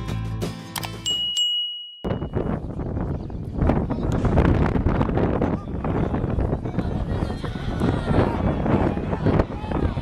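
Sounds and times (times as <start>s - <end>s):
bell-like notification ding: 1.0s - 2.5s.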